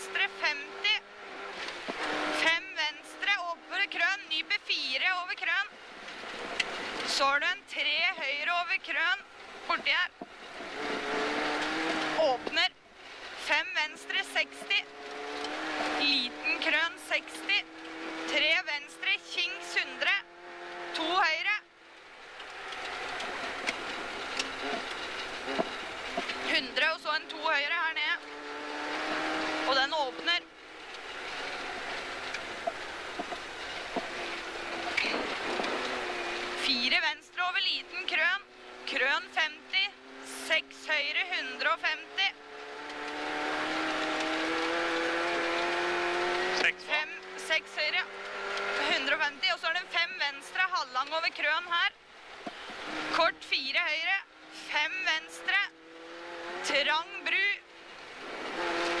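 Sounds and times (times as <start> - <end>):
rally car engine revving: 0.0 - 59.0
tyre and road noise: 0.0 - 59.0.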